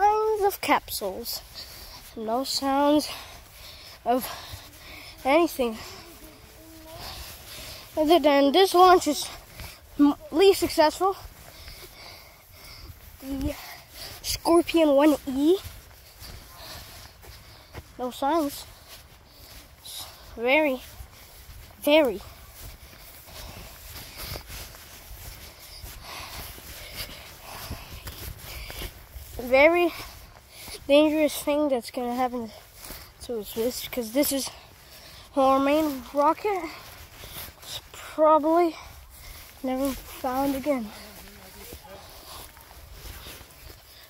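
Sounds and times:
footsteps swishing through grass: 0.0s - 44.0s.

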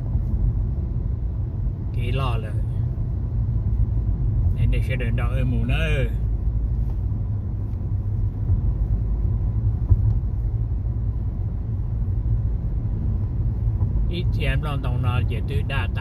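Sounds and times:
car cabin road and engine noise: 0.0s - 16.0s.

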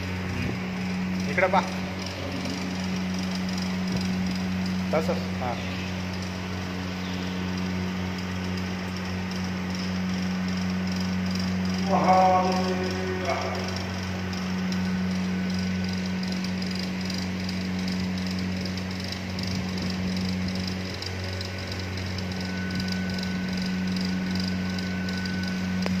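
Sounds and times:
low electrical hum: 0.0s - 26.0s
thin high tone: 0.8s - 18.7s, 19.8s - 26.0s
click: 19.8s - 26.0s.

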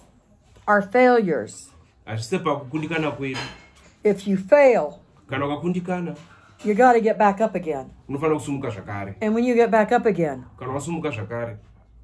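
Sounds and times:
woman speaking: 0.6s - 1.9s, 4.0s - 5.0s, 6.6s - 8.0s, 9.2s - 10.6s.

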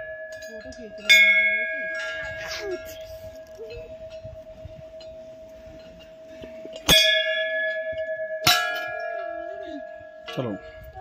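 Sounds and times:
bell hum: 0.0s - 11.0s
temple bells struck: 0.0s - 11.0s.

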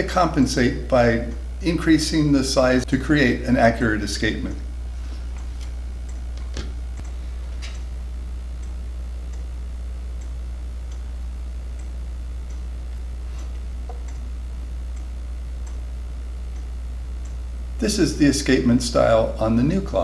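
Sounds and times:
steady low hum: 0.0s - 20.0s
clock ticking: 11.7s - 17.5s.

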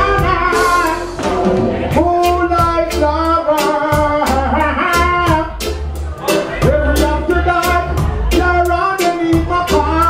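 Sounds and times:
heavy bass line: 0.0s - 10.0s
reggae music: 0.0s - 10.0s
steady drum beat: 0.0s - 10.0s.

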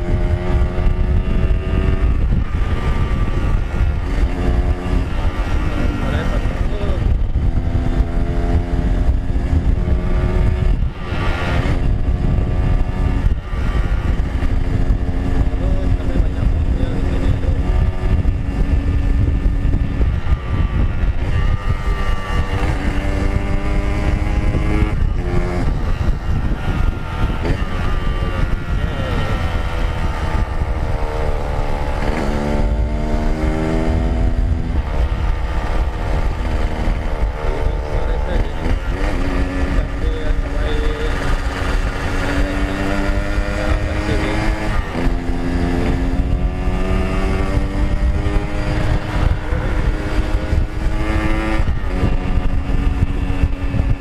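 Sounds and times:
motorcycle engine running: 0.0s - 54.0s
wind rumble on microphone: 0.0s - 54.0s.

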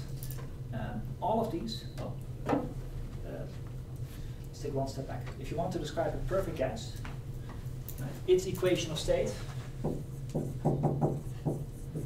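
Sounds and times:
steady low hum: 0.0s - 12.0s
marker writing on whiteboard: 9.8s - 12.0s.

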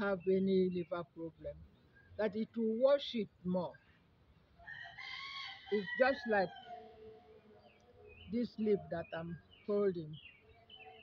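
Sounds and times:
person speaking: 0.0s - 1.6s, 8.3s - 10.2s
rooster crowing: 4.6s - 7.4s.

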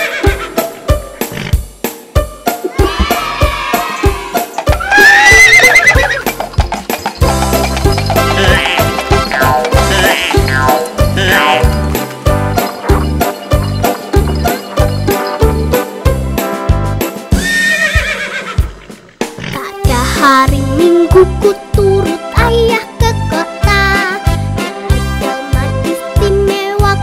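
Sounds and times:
music with percussive beat: 0.4s - 17.6s
horse whinny: 2.8s - 6.4s, 7.6s - 11.8s, 17.4s - 19.5s.

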